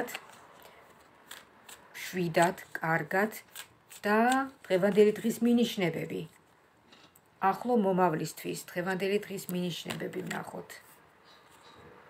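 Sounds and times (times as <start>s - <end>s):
cards snapping: 0.0s - 1.9s, 3.4s - 5.1s
cards rustling while shuffled: 0.0s - 6.4s, 9.4s - 11.6s.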